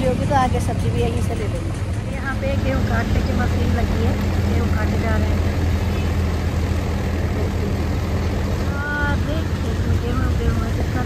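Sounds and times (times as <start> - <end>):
tractor engine drone: 0.0 - 11.0.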